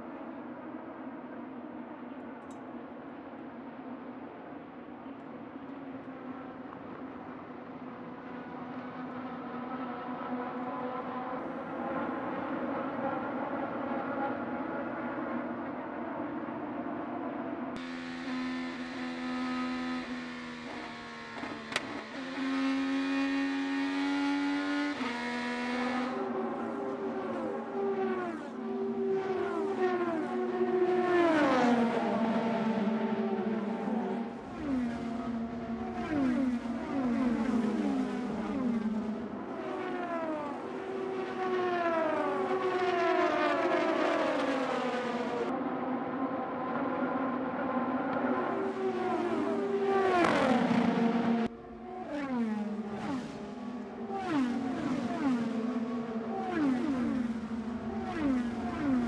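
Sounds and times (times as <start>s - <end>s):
racing cars passing by: 6.1s - 59.0s.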